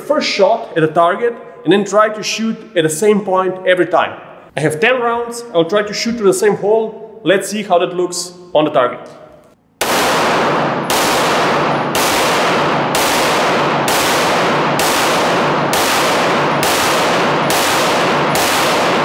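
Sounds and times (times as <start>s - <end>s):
pistol shots: 9.8s - 19.0s.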